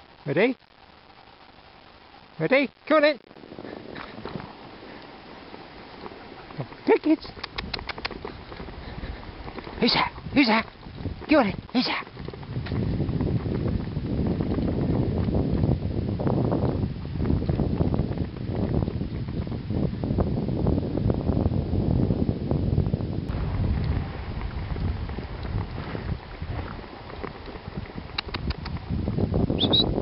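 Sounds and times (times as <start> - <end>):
sled dogs and rig rushing through snow: 0.0 - 20.5, 23.3 - 30.0
wind rumbling on microphone: 0.0 - 30.0.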